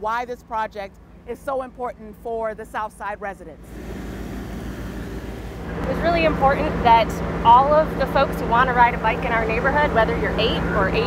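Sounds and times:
outdoor street noise: 0.0 - 11.0
steady hum: 2.8 - 11.0
low engine rumble: 3.5 - 11.0.

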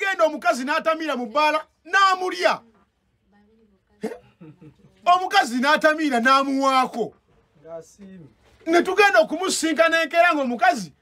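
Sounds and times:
sharp hiccup-like vocal sound: 4.0 - 4.4.

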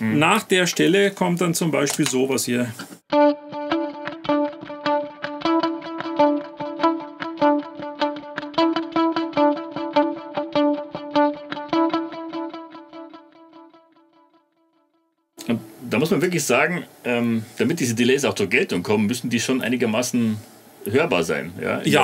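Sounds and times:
electric guitar with delay: 3.1 - 14.0.

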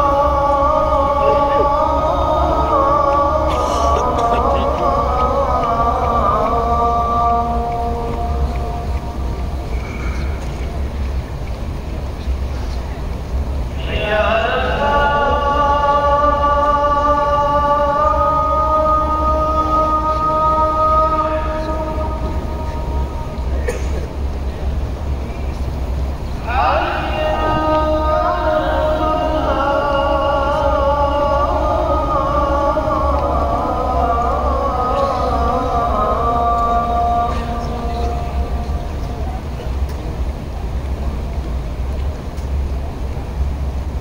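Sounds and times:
call to prayer over loudspeakers: 0.0 - 12.2, 13.0 - 41.4
crowd walking on marble: 0.0 - 44.0
steady low rumble: 0.0 - 44.0.

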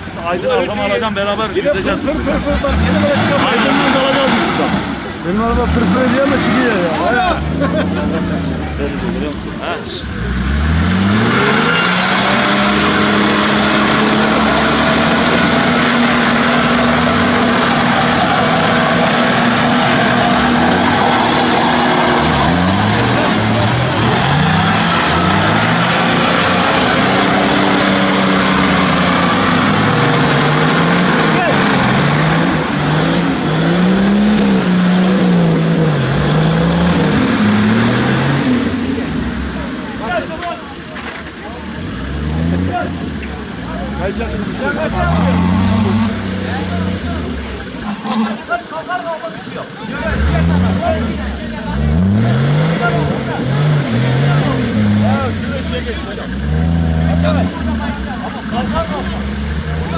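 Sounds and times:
car engine revving hard: 1.2 - 40.8, 41.5 - 59.9.

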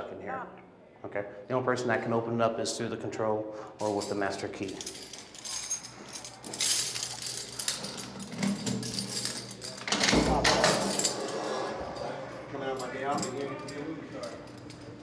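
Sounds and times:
metal clicks and clinks: 3.8 - 11.3
keys rattling in a lock: 3.8 - 15.0.

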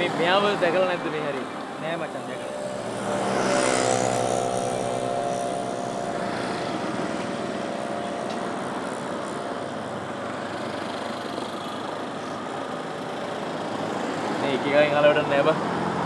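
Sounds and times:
street traffic passing: 0.0 - 16.0.

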